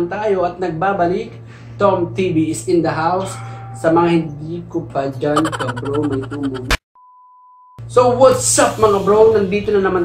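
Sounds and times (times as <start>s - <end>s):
clipped voice: 5.4s - 6.8s.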